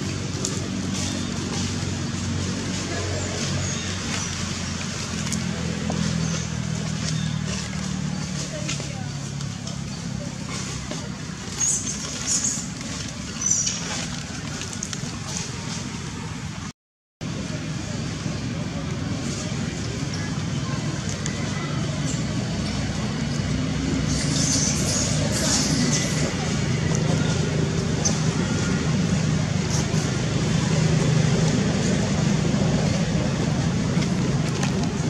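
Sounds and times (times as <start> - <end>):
low rumble of road traffic: 0.0 - 35.0
indistinct voices: 17.3 - 35.0.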